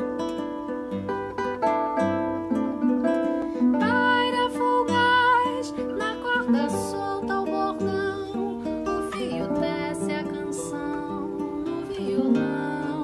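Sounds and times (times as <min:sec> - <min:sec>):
classical guitars plucking: 0:00.0 - 0:13.0
person singing long notes: 0:03.8 - 0:13.0.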